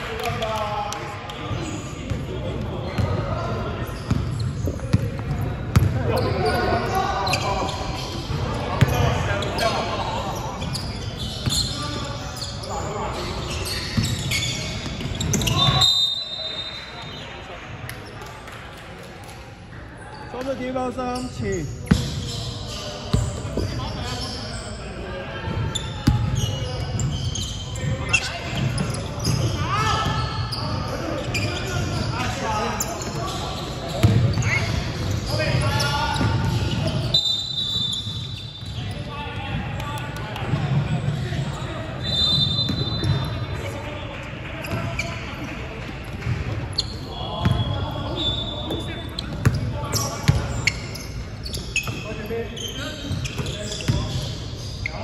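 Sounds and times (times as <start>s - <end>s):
sneakers squeaking: 0.2s - 18.6s, 20.0s - 55.0s
ball bouncing on wooden court: 4.1s - 6.0s, 34.0s - 34.5s.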